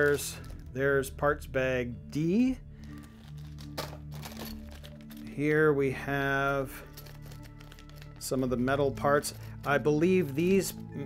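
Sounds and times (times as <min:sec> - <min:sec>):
plastic bags crinkling: 0:00.0 - 0:00.7, 0:02.8 - 0:05.4, 0:06.7 - 0:10.7
soft background music: 0:00.0 - 0:11.0
sharp plastic crackle: 0:06.9 - 0:08.4.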